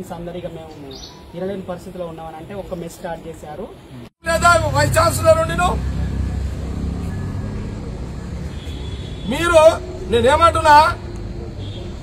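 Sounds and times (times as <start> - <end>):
road traffic rumble: 0.0 - 12.0
man's voice: 4.2 - 6.0, 9.3 - 11.0.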